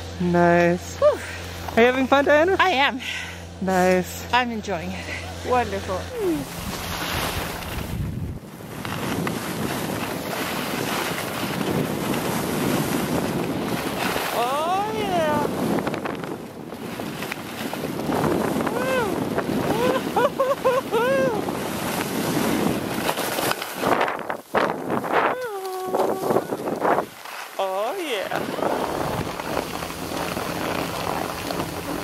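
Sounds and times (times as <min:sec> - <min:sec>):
wind rushing over microphone: 0:05.4 - 0:27.3, 0:28.0 - 0:32.0
skis hissing on snow: 0:06.3 - 0:08.0, 0:25.7 - 0:32.0.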